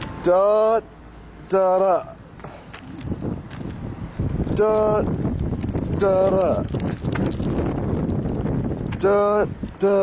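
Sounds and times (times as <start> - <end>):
low rumbling microphone noise: 0.0 - 10.0
footsteps on paving stones: 2.1 - 10.0.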